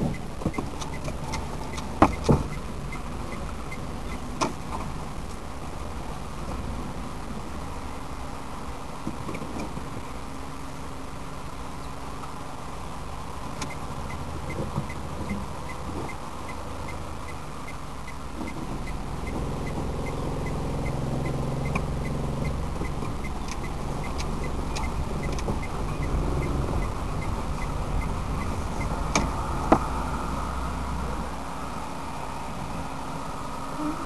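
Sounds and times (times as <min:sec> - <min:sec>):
turn signal ticking: 0:00.0 - 0:05.4, 0:13.5 - 0:30.0
car engine and road noise: 0:00.0 - 0:34.0.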